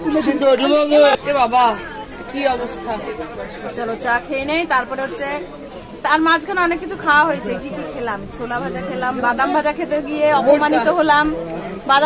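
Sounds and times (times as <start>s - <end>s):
voices chattering: 0.0s - 12.0s
woman talking: 6.1s - 12.0s.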